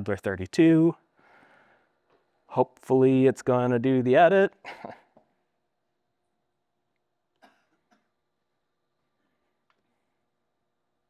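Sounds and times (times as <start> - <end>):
person clearing throat: 4.7 - 5.1, 7.4 - 8.1.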